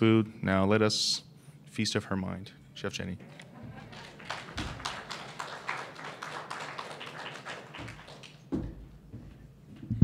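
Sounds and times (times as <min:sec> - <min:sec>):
small audience applauding: 0:03.6 - 0:08.7.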